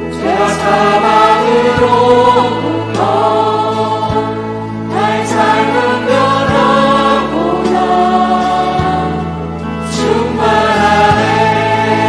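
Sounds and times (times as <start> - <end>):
choir singing worship song: 0.0 - 12.0
instrumental accompaniment: 0.0 - 12.0.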